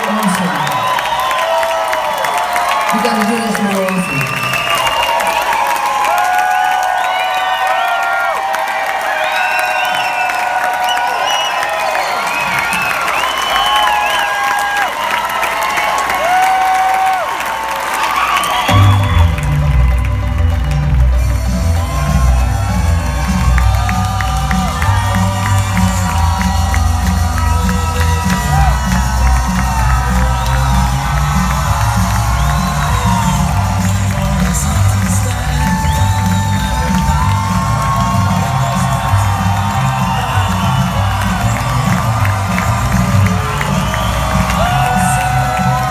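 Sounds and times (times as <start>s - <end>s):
audience cheering and whooping: 0.0s - 45.9s
loud music with heavy bass beat: 20.9s - 45.9s.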